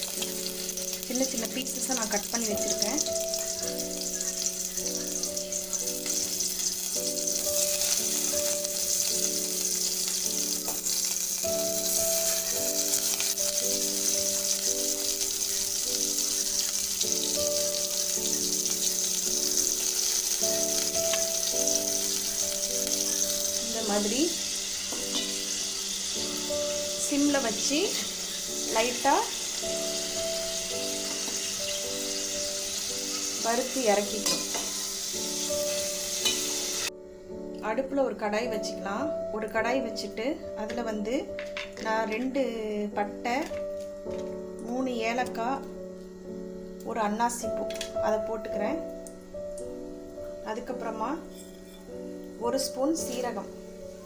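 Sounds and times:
cheese sizzling in oil: 0.0 - 37.0, 40.8 - 54.0.

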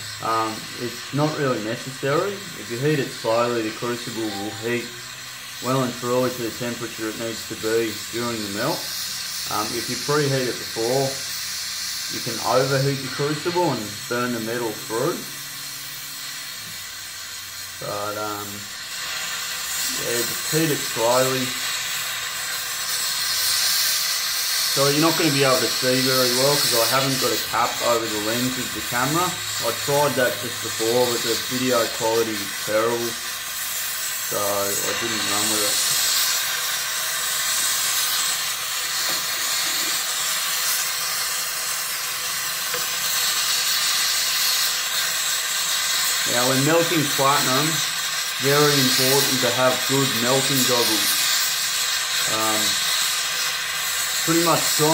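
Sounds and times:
gas torch flame hissing: 0.0 - 54.9.

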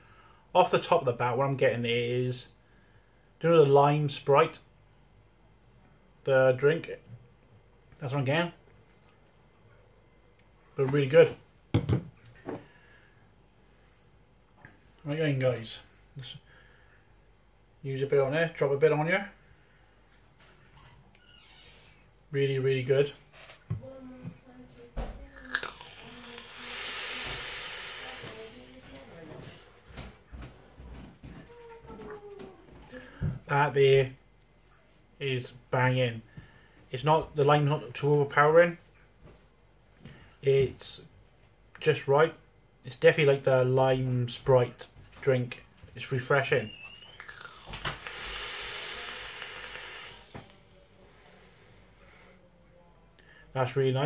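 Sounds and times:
vapour blown out breathy rush: 25.4 - 28.8, 47.2 - 52.0
vape drawing hiss: 25.5 - 28.8, 47.4 - 50.6
vape click: 47.5 - 50.4.

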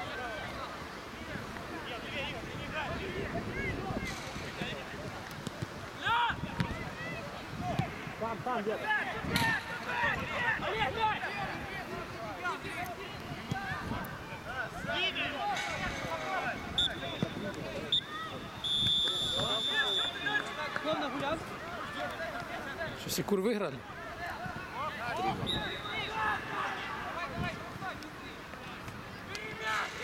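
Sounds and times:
players calling out: 5.9 - 23.1, 23.8 - 30.0
referee's whistle: 16.7 - 20.5, 25.4 - 26.2.

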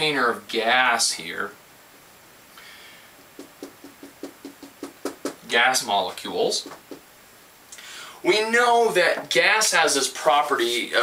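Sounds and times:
marker tapping on whiteboard: 3.4 - 5.4, 6.6 - 7.1.

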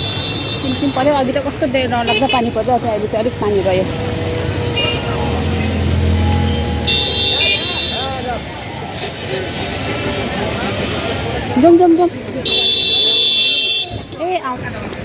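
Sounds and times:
traffic on a wet road: 0.0 - 15.0
car passing close: 1.5 - 11.6
high-pitched vehicle horn: 3.4 - 8.4.

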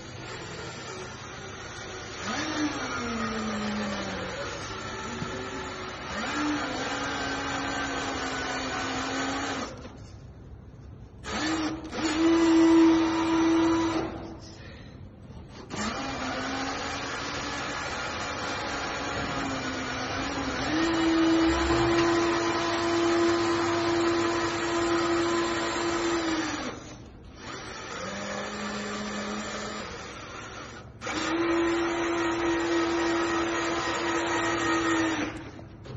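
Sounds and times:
toy truck electric motor whining: 15.6 - 35.5.

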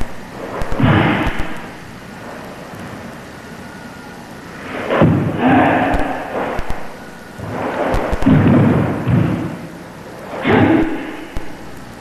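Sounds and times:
low rumbling movement noise: 4.4 - 11.9.

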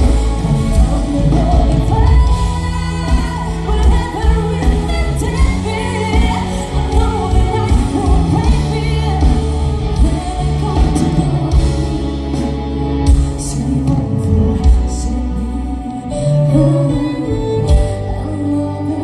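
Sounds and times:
heavy bass: 0.0 - 19.0
lead vocalist singing: 0.0 - 19.0
live band playing pop song: 0.0 - 19.0.

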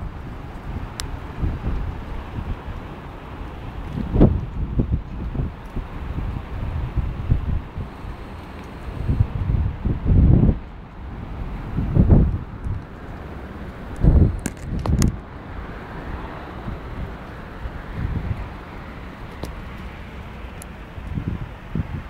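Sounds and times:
wind buffeting microphone: 0.0 - 22.0.

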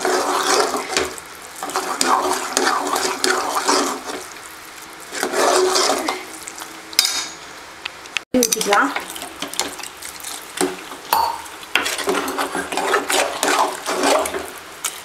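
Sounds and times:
ladle scraping a metal pot: 0.0 - 4.3, 5.1 - 6.4, 11.3 - 14.6.

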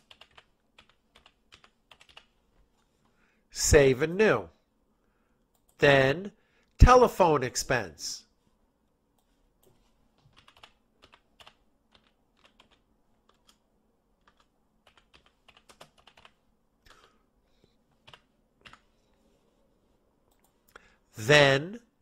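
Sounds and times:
computer keyboard typing: 0.0 - 2.4, 9.6 - 13.6, 14.2 - 17.1, 18.0 - 18.9.

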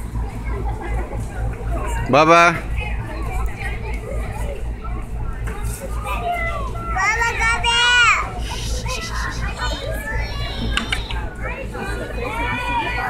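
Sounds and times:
young children chattering: 2.8 - 13.0
high-pitched child's call: 7.0 - 11.3.

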